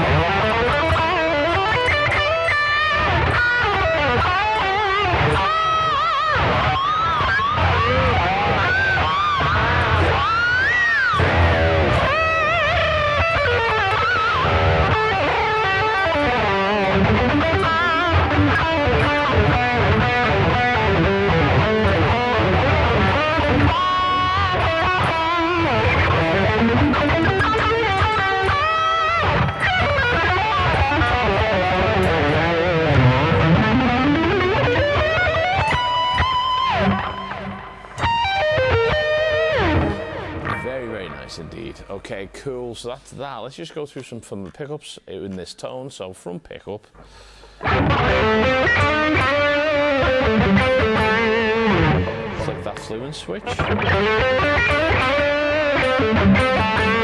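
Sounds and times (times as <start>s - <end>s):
distorted electric guitar: 0.0s - 42.4s, 46.9s - 57.0s.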